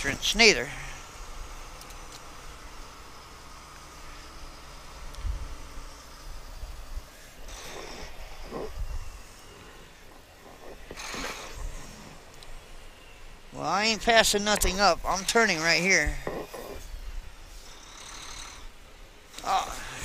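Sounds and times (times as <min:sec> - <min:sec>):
truck diesel engine droning: 0:00.0 - 0:20.0
short breathy bursts: 0:06.7 - 0:12.8, 0:15.0 - 0:20.0.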